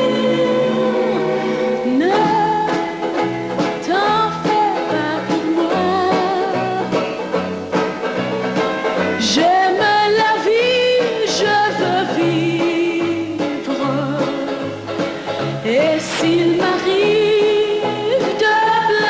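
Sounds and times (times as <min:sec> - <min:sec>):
woman singing pop ballad: 0:00.0 - 0:03.1, 0:03.7 - 0:07.0, 0:09.2 - 0:14.6, 0:15.6 - 0:19.0
instrumental accompaniment: 0:00.0 - 0:19.0.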